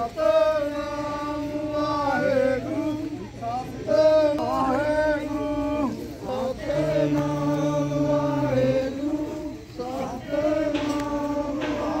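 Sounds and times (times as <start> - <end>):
group chanting a hymn: 0.0 - 12.0.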